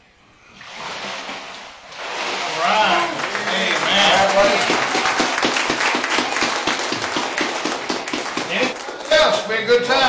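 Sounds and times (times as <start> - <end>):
crowd applauding: 2.5 - 9.5
hands clapping close by: 3.2 - 9.1.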